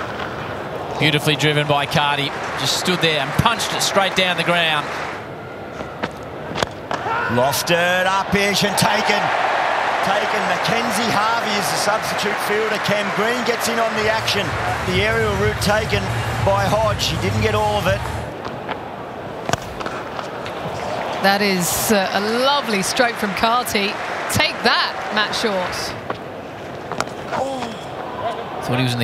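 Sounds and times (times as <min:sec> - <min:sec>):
stadium crowd noise: 0:00.0 - 0:29.0.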